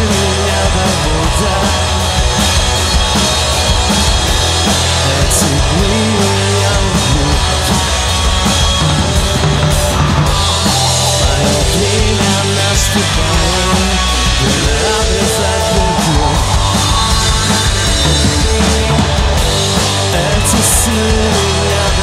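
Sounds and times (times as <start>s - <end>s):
bass guitar: 0.0s - 22.0s
drum kit with cymbals: 0.0s - 22.0s
electric guitars: 0.0s - 22.0s.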